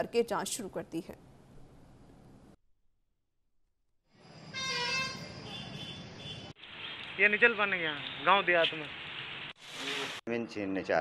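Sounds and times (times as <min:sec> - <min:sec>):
road traffic noise: 0:04.4 - 0:10.3
vehicle horn: 0:04.5 - 0:06.5.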